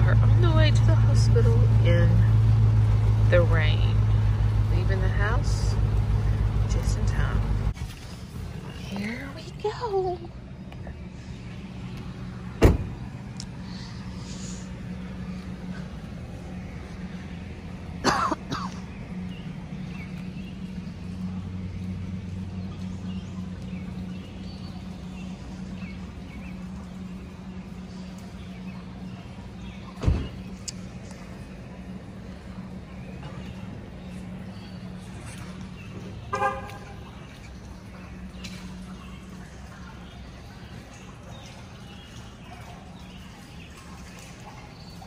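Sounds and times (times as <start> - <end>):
steady low hum: 0.0 - 45.0
person coughing: 18.0 - 18.8
car horn toot: 36.3 - 37.0.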